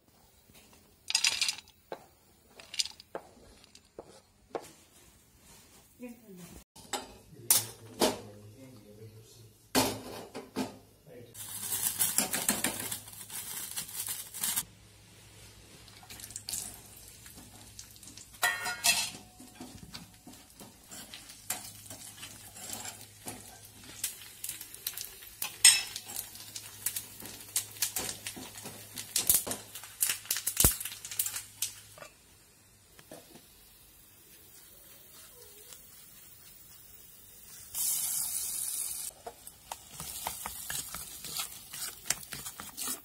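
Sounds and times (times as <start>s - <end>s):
frying sizzle: 11.4s - 43.0s.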